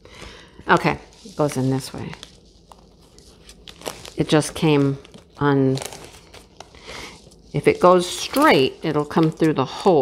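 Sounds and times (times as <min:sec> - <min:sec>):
plastic wrap rustling: 0:00.3 - 0:10.0.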